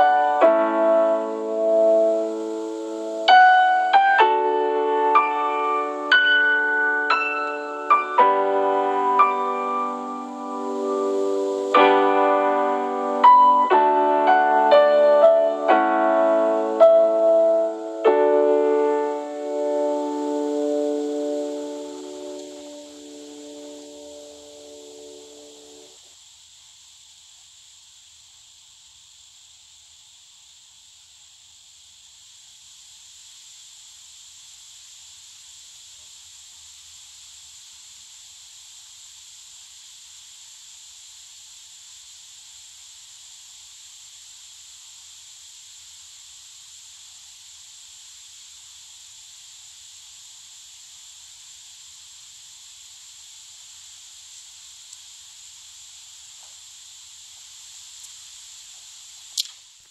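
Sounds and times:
high-pitched hiss: 0.0s - 59.9s.

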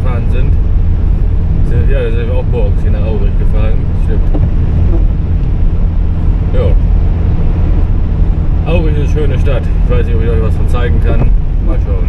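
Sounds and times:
car driving interior rumble: 0.0s - 12.0s.

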